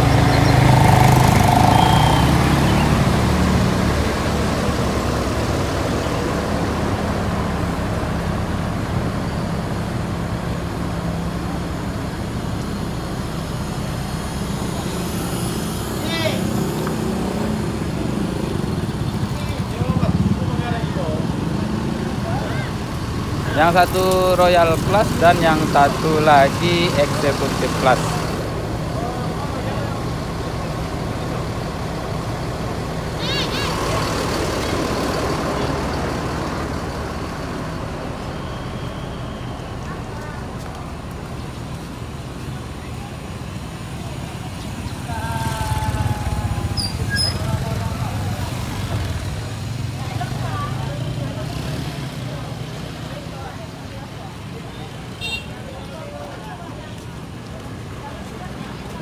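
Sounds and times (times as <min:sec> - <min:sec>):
bus diesel engine droning: 0:00.0 - 0:59.0.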